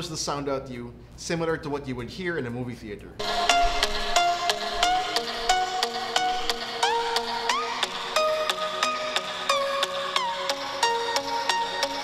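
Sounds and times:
electronic dance music: 3.2s - 12.0s.

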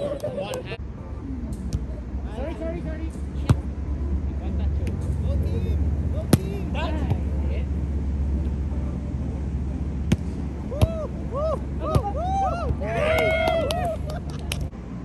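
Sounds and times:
steady low rumble: 0.0s - 15.0s
volleyball slaps: 6.2s - 7.3s, 10.1s - 11.0s.

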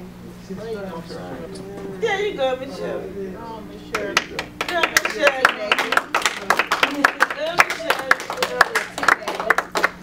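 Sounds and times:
voices calling out: 0.7s - 6.2s
people clapping: 3.9s - 10.0s.

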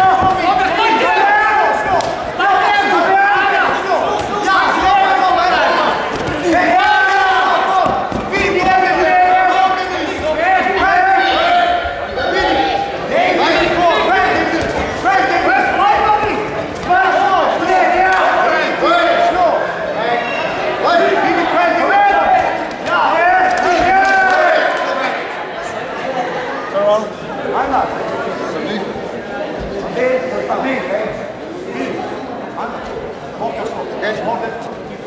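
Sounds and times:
people shouting: 0.0s - 19.7s, 20.4s - 25.2s.

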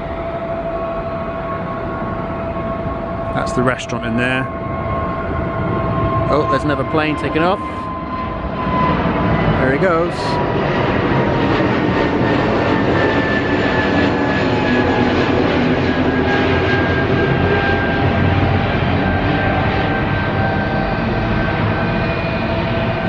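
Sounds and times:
jet engines roaring overhead: 0.0s - 23.0s.

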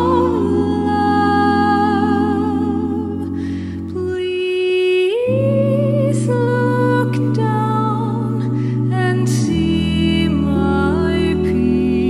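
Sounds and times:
a cappella close-harmony singing: 0.0s - 3.4s, 4.0s - 12.0s.

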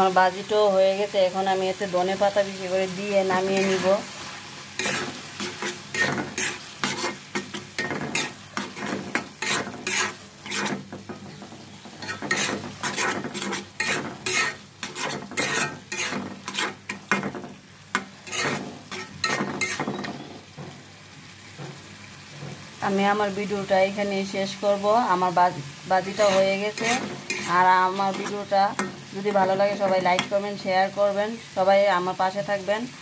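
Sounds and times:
food sizzling in a pan: 0.0s - 33.0s
spoon scraping a pan: 3.2s - 20.7s, 26.0s - 30.7s.

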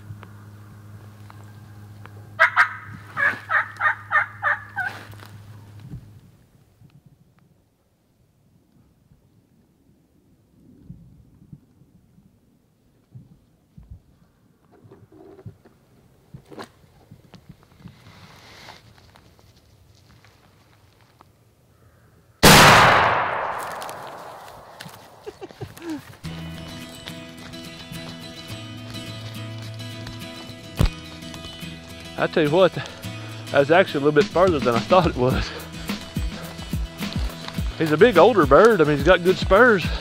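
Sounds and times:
faint rustles: 13.0s - 21.4s
shotgun shot echoing: 22.4s - 25.2s
music: 26.2s - 40.0s.

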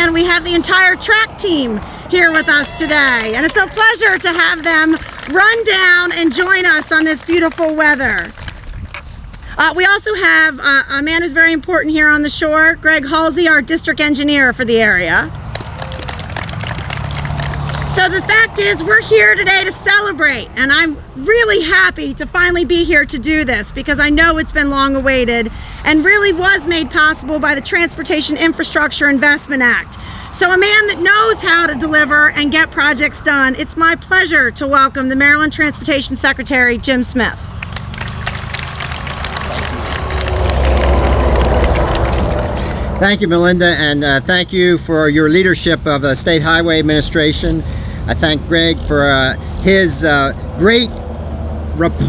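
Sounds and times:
vehicle engine hum: 0.0s - 52.0s.

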